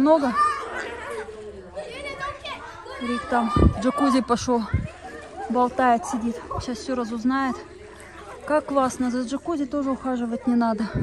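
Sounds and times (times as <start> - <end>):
chatter in swimming pool: 0.0 - 11.0
children calling and talking: 0.0 - 11.0.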